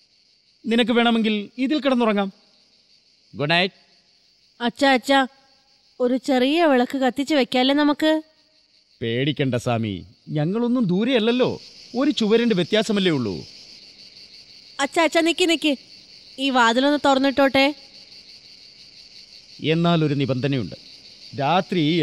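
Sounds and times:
crickets chirring: 0:00.0 - 0:22.0.

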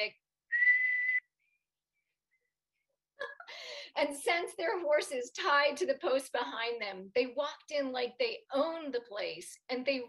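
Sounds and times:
person whistling a held note: 0:00.5 - 0:01.4.

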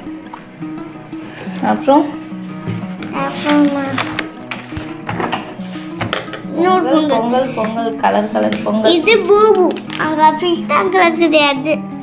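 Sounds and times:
background music with held notes: 0:00.0 - 0:12.0
book pages turning: 0:02.7 - 0:06.5, 0:09.5 - 0:10.4.

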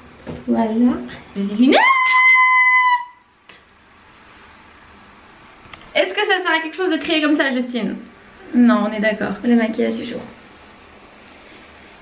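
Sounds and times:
woman screaming high note: 0:01.7 - 0:03.2.

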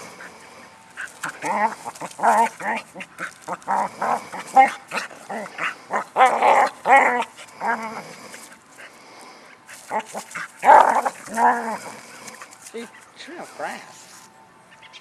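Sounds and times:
dog barking and whining: 0:01.0 - 0:08.2, 0:09.8 - 0:12.4.

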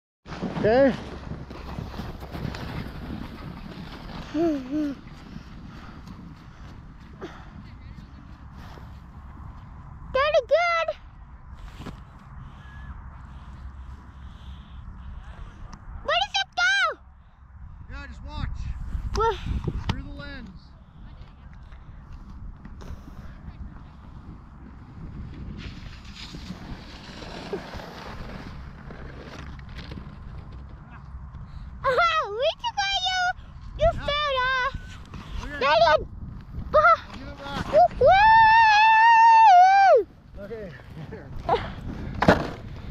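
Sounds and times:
snowskate sliding over snow: 0:00.3 - 0:06.5, 0:25.1 - 0:30.8, 0:37.0 - 0:39.4
wind buffeting microphone: 0:00.3 - 0:42.9.

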